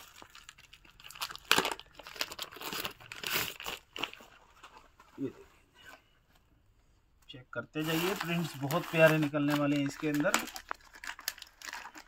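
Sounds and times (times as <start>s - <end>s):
plastic packaging crinkling: 0.0s - 5.0s, 7.8s - 12.0s.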